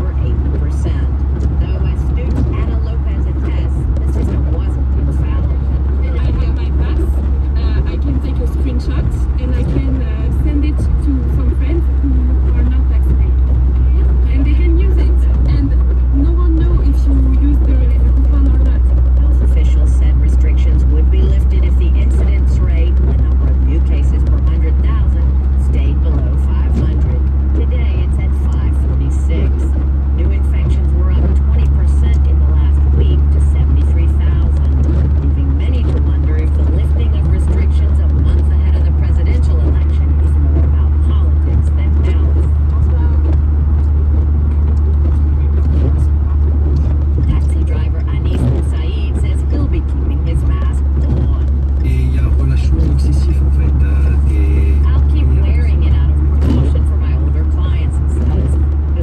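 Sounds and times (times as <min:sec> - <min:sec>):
road and engine drone: 0:00.0 - 0:59.0.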